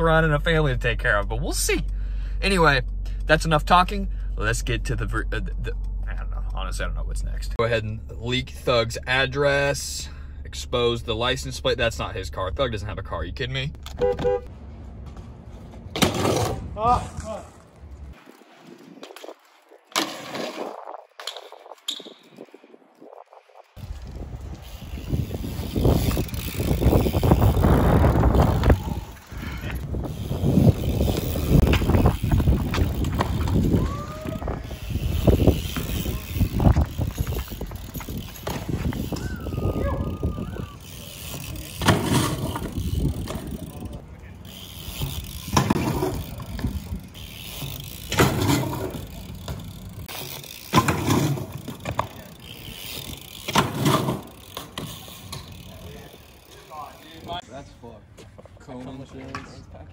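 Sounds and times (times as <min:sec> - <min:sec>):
bike tyres rolling on concrete: 0:10.7 - 0:59.9
bike landing with sharp knocks: 0:13.9 - 0:17.5, 0:40.9 - 0:43.7, 0:44.8 - 0:55.7
wind noise: 0:16.4 - 0:44.0.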